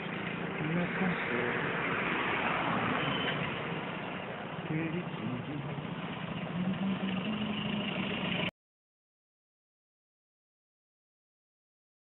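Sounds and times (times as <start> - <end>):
vehicle engine rumble: 0.0 - 8.5.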